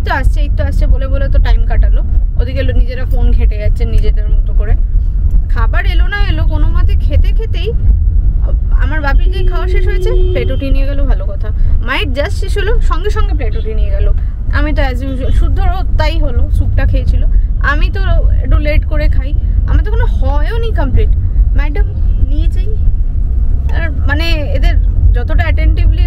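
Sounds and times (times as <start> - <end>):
woman talking: 0.0 - 4.8, 5.5 - 7.8, 8.4 - 22.8, 23.7 - 26.0
car cabin rumble: 0.0 - 26.0.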